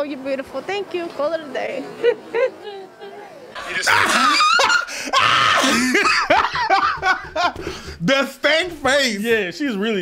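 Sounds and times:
men laughing loudly: 3.6s - 8.0s.

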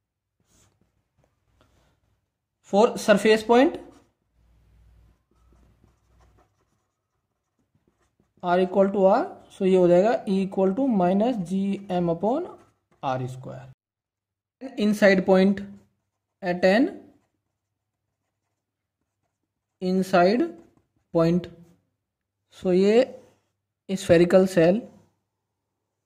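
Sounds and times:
pen scratching on paper: 3.2s - 9.6s, 12.3s - 13.1s, 15.5s - 21.8s
pen writing on paper: 5.2s - 8.4s, 17.0s - 19.8s.

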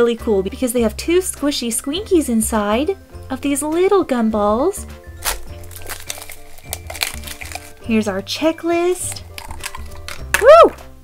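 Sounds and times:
background music: 0.0s - 11.0s
plastic shrink wrap crinkling: 5.2s - 10.5s.

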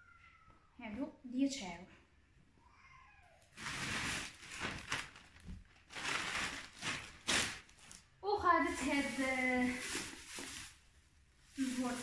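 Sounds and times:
blanket rustling: 3.6s - 10.9s, 11.5s - 12.0s.

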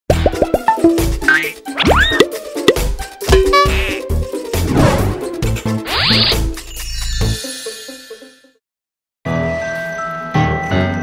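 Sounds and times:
cartoon logo jingle: 3.3s - 4.2s.

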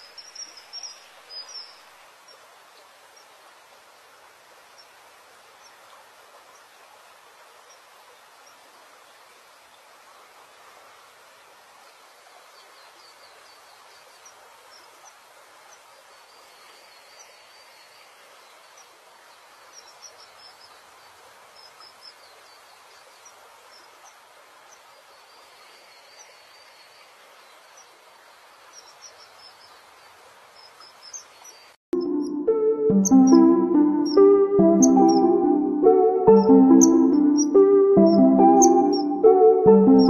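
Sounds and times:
steady outdoor hiss: 0.0s - 40.0s
high bird chirps: 32.0s - 35.5s, 36.2s - 40.0s.

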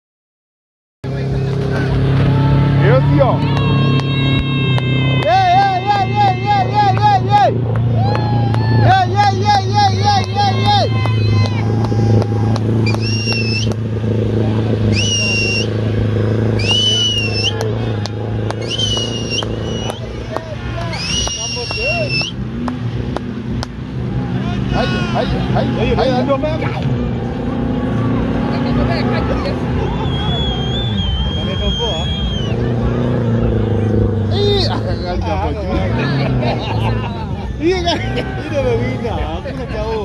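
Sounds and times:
crowd chatter and shouts: 1.0s - 40.0s
vehicle engine running: 1.0s - 40.0s
shrill whistle: 12.8s - 13.7s, 14.9s - 15.8s, 16.5s - 17.7s, 18.6s - 20.1s, 20.9s - 22.4s, 30.0s - 32.7s.

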